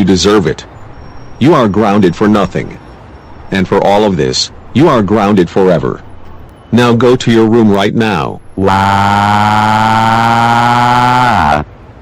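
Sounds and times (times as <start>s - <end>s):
cartoon character crying wail: 8.6s - 11.7s.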